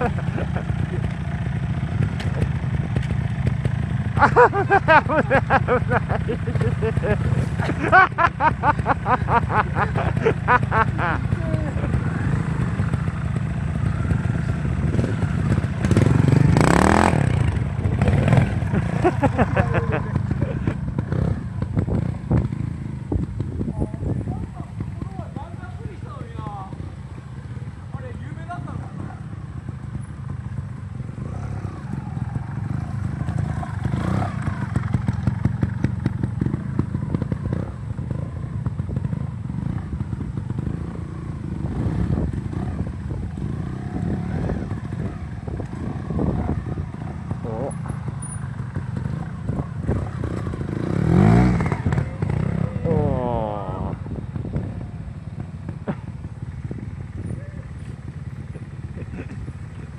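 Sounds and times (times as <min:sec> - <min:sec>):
loud motorcycle rev: 0:00.0 - 0:59.9
motorcycle engines with throttle blips: 0:00.0 - 0:59.9.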